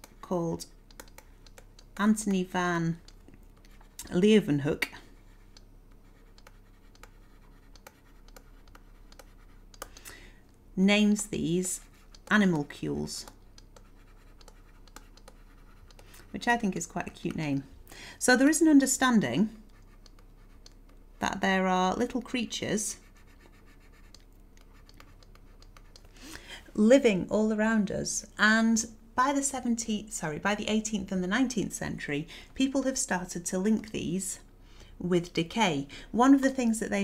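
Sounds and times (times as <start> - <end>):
low steady hum and hiss: 0.0 - 37.0
small clicks: 0.9 - 2.0, 13.2 - 16.2
stylus scratching on tablet: 3.6 - 10.0, 11.0 - 17.5, 18.3 - 26.1.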